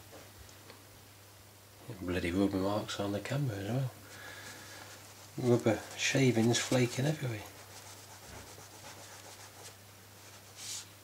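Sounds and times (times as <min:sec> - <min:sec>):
eraser rubbing on plastic: 0:04.8 - 0:10.9.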